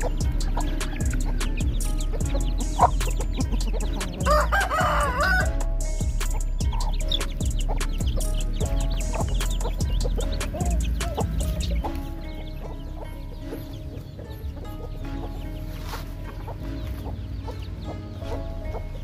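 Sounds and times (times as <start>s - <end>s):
background music: 0.0s - 19.0s
chickens clucking: 0.0s - 19.0s
rooster crowing: 4.2s - 5.6s.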